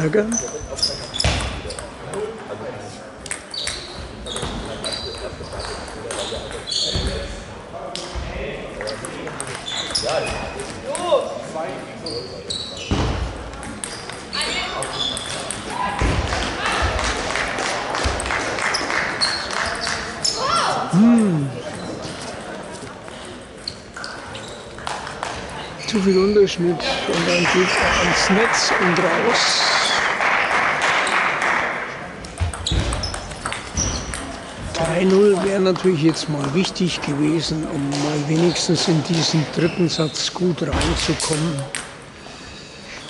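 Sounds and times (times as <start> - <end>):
voices in a hall: 0.0 - 43.0
table tennis balls clicking: 32.2 - 36.7.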